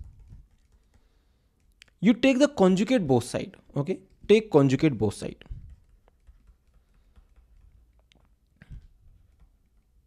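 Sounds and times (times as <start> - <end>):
stylus tapping on pen tablet: 5.4 - 10.0.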